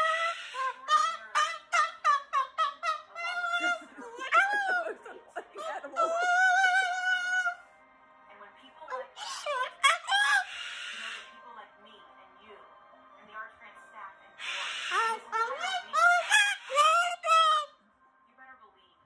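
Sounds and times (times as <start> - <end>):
cockatoo screaming: 0.0 - 4.8, 9.2 - 11.3, 14.4 - 17.7.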